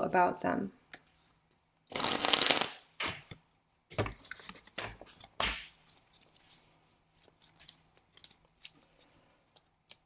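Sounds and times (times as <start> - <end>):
cards being shuffled: 1.9 - 3.3.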